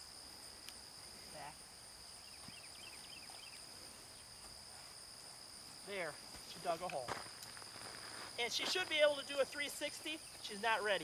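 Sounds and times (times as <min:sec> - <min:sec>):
faint insect chirps: 0:00.0 - 0:11.0
insects droning: 0:00.0 - 0:11.0.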